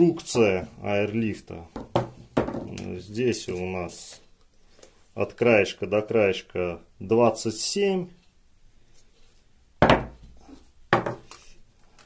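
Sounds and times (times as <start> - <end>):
plastic pipe frame knocking: 1.8 - 2.9, 9.8 - 10.2, 10.9 - 11.3.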